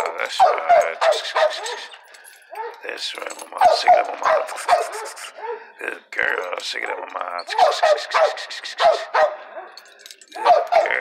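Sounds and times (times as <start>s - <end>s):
dog whining yelps: 0.3s - 2.8s, 3.6s - 5.7s, 7.5s - 9.8s, 10.4s - 11.0s.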